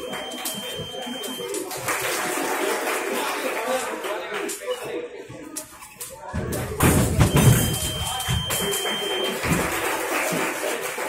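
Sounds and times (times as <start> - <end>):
thin high beep: 0.0 - 1.6, 7.3 - 9.5.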